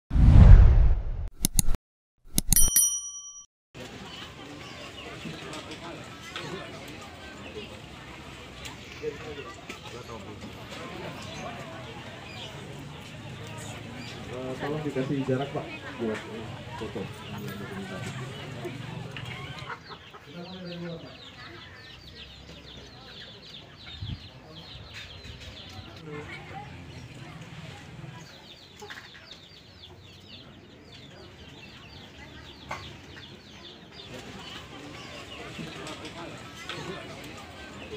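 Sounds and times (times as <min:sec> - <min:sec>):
quick clicks: 0:01.3 - 0:02.8
bright bell ding: 0:02.3 - 0:03.5
faint outdoor crowd ambience: 0:03.8 - 0:37.9.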